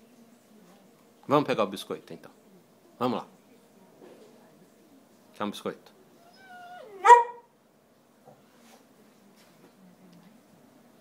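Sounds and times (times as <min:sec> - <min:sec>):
dog whining: 0:06.2 - 0:07.4
dog barking: 0:07.0 - 0:07.5.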